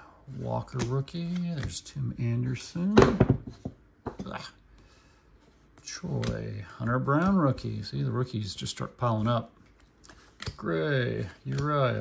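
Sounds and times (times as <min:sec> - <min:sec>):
cards sliding with papery rustles: 0:00.2 - 0:02.9, 0:05.4 - 0:12.0
cards clicking together: 0:09.7 - 0:12.0.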